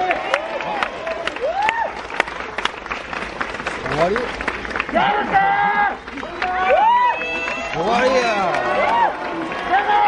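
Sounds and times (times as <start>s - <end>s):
audience members shouting: 4.9s - 10.0s.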